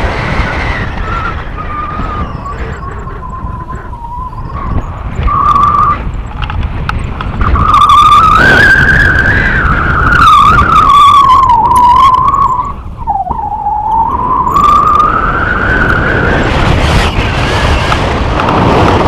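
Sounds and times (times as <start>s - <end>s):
wind on microphone: 0.0s - 19.0s
wavering whistle: 0.2s - 6.5s, 7.4s - 17.3s.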